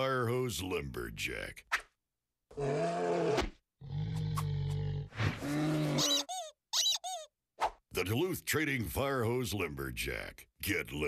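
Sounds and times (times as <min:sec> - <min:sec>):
high squeaks: 0:05.8 - 0:07.3.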